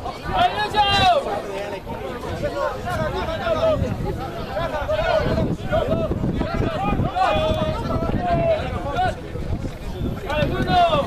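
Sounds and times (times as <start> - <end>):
crowd chatter: 0.0 - 11.0
voices calling out: 0.0 - 11.0.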